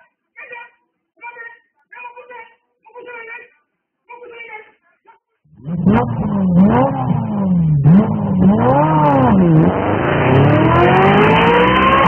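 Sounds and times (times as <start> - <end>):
car engine revving: 5.5 - 12.0.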